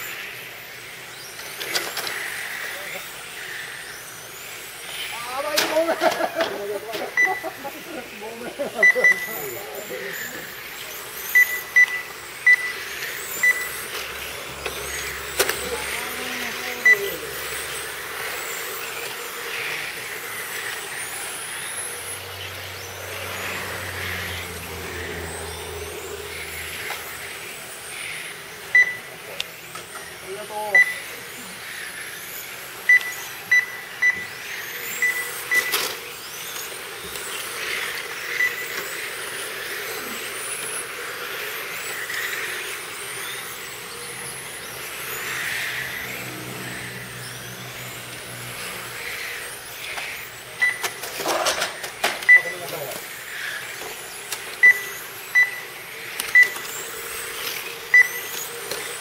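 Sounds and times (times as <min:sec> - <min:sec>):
rc car motors whining: 0:00.0 - 0:59.0
short electronic beeps: 0:08.8 - 0:09.3, 0:11.3 - 0:12.8, 0:13.4 - 0:13.8, 0:16.8 - 0:17.1, 0:28.7 - 0:29.1, 0:30.7 - 0:31.0, 0:32.9 - 0:34.3, 0:50.6 - 0:50.9, 0:52.3 - 0:52.6, 0:54.6 - 0:55.6, 0:57.9 - 0:58.2.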